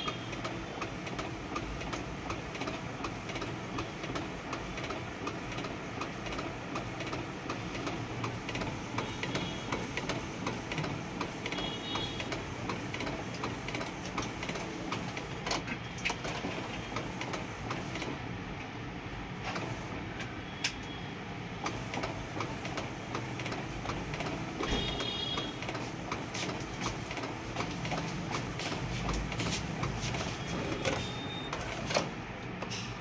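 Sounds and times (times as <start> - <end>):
inkjet printer whirring and ticking: 0.0 - 33.0.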